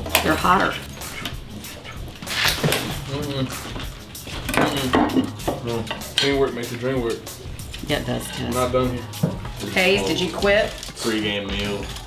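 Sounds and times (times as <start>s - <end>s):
utensils clinking: 0.0s - 12.0s
low voices: 0.2s - 12.0s.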